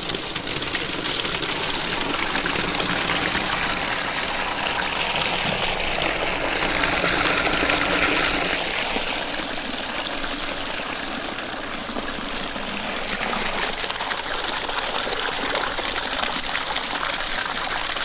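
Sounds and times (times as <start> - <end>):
water gushing from hose: 0.0 - 18.0
water splashing onto foam: 0.0 - 18.0.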